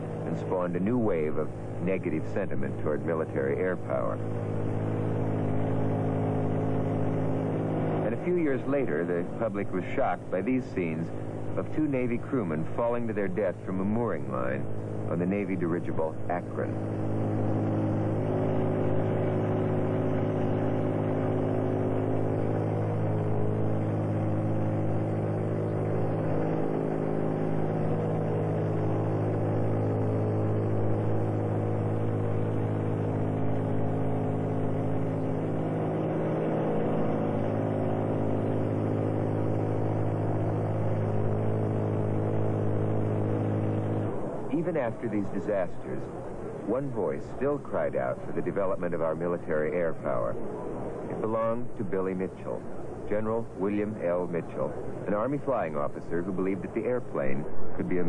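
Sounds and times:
engine drone: 0.0s - 58.0s.

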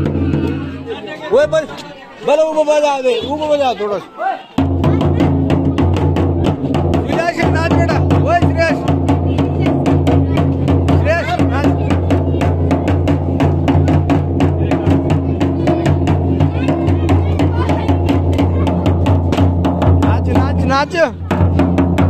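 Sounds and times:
drum beating fast rhythm: 0.0s - 1.7s, 4.6s - 22.0s
voices singing and calling: 0.0s - 22.0s.

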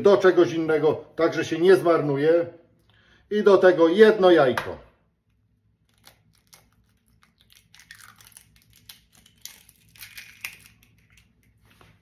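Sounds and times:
eggshell cracking: 5.8s - 11.6s.

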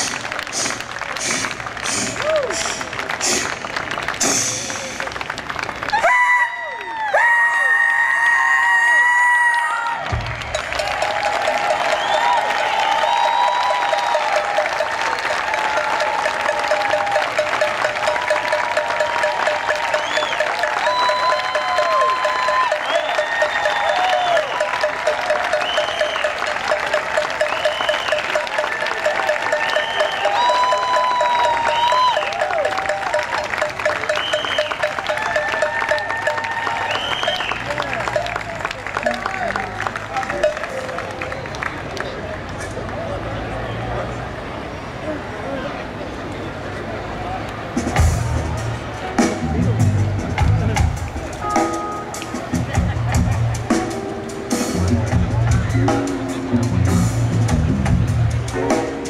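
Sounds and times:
crowd applause: 0.0s - 45.6s, 46.2s - 59.0s
live jazz band playing: 47.8s - 59.0s.

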